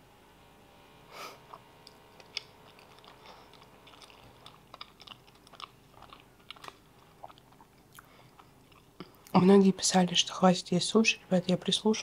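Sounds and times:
person chewing pastry: 1.4 - 9.4.

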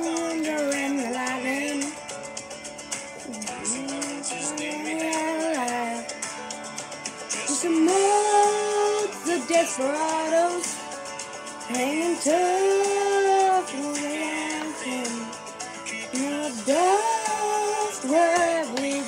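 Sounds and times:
woman singing long held notes: 0.0 - 1.9, 3.3 - 6.0, 7.4 - 10.7, 11.7 - 15.3, 16.1 - 19.0
backing music: 0.0 - 19.0.

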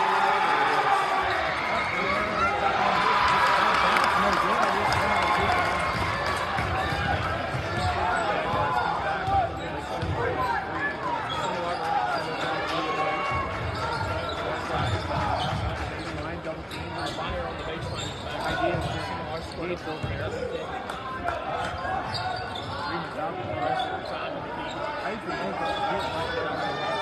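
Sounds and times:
crowd chatter in echoing gym: 0.0 - 27.0.

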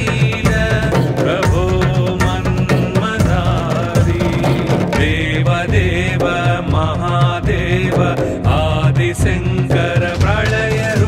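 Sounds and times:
instruments with steady beat: 0.0 - 11.0
person chanting devotional song: 0.0 - 11.0.

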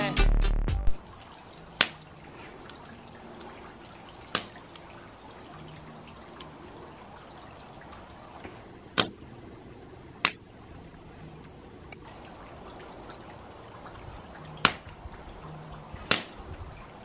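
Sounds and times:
fire crackling: 0.9 - 9.1.

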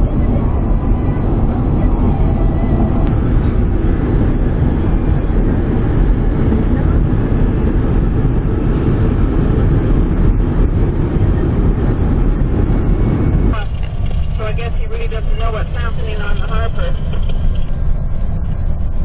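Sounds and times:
vehicle low rumble: 0.0 - 19.0.

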